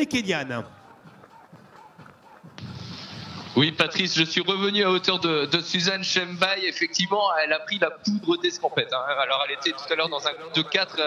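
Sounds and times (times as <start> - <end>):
faint outdoor race ambience: 0.0 - 11.0.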